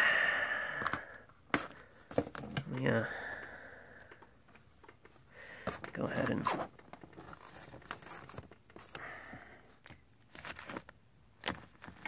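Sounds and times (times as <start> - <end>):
breathy sigh: 0.0 - 1.3, 3.0 - 4.3, 9.0 - 9.8.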